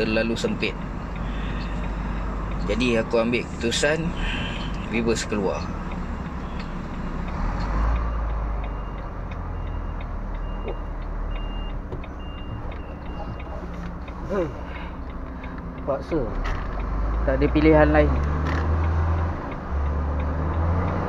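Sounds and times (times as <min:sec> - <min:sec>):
diesel truck engine running: 0:00.0 - 0:21.0
reversing alarm beeps: 0:06.0 - 0:06.8, 0:08.1 - 0:13.6.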